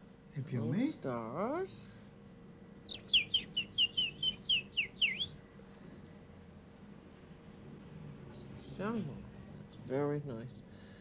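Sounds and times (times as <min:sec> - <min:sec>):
man whistling birdsong chirps: 0:02.9 - 0:05.4.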